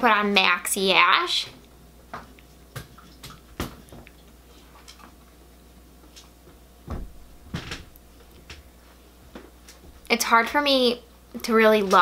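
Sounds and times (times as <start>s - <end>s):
dull handling thumps: 6.8s - 8.6s.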